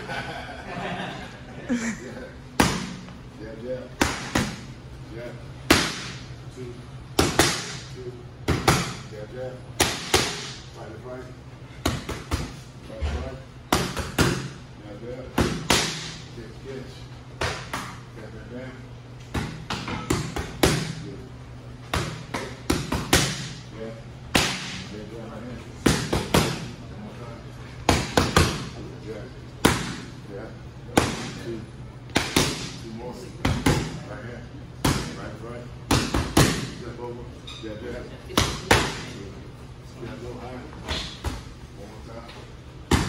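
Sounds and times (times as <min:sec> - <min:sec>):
boxing gloves slapping focus mitts: 0:32.1 - 0:32.8, 0:35.9 - 0:36.8.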